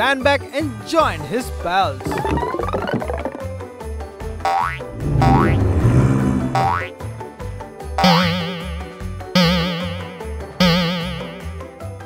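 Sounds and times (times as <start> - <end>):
upbeat background music: 0.0 - 12.0
cartoon boing twangs: 4.5 - 5.6, 6.6 - 6.9, 8.0 - 11.4.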